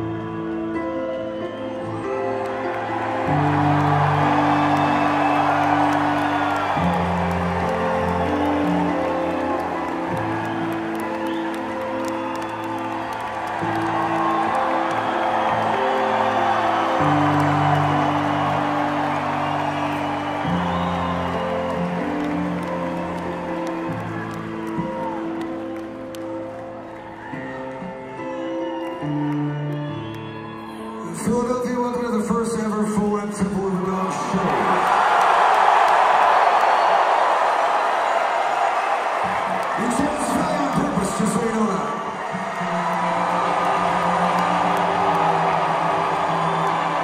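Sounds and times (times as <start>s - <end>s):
slow music with held chords: 0.0s - 31.4s
audience whoops: 0.0s - 31.7s, 34.0s - 47.0s
concert crowd noise: 0.0s - 47.0s.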